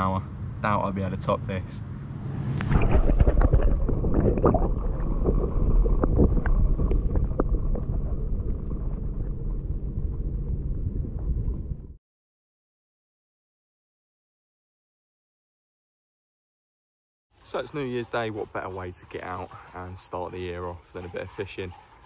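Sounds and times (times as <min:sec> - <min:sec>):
underwater water sloshing: 0:02.4 - 0:11.8.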